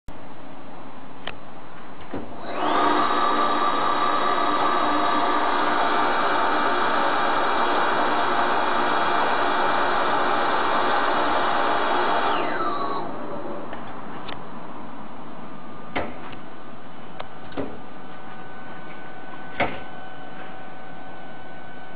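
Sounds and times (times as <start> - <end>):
tube bender motor whining: 2.3 - 14.0.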